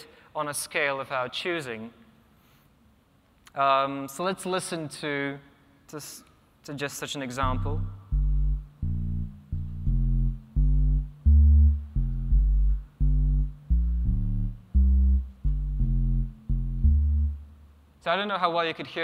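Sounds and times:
synthesizer bass line: 7.4s - 17.7s.

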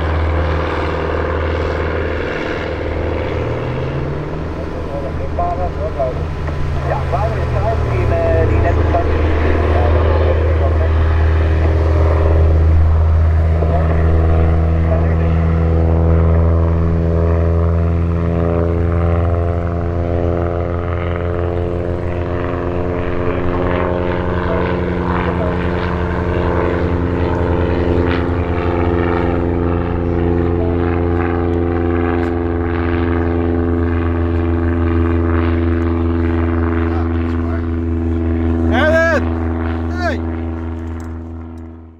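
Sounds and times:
light aircraft engine droning: 0.0s - 41.9s.

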